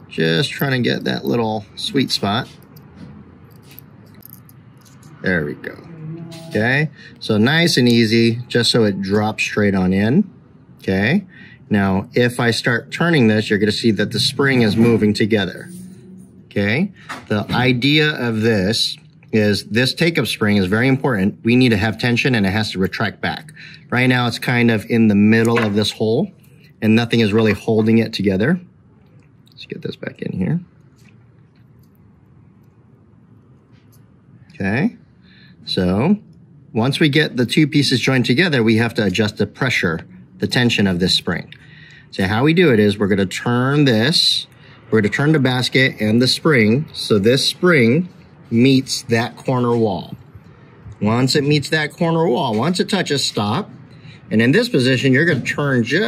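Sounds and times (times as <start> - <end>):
low steady hum: 0.0 - 56.0
faint clicks of metal parts: 2.4 - 5.2.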